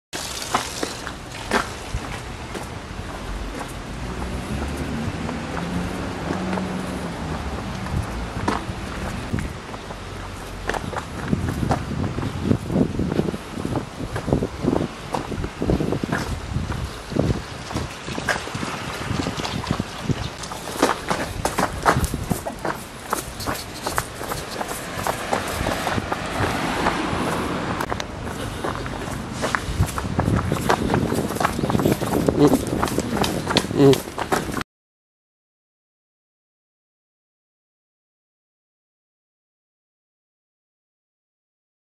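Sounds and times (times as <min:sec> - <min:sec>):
footsteps running on asphalt: 0:00.2 - 0:34.6
outdoor rumble: 0:00.2 - 0:34.6.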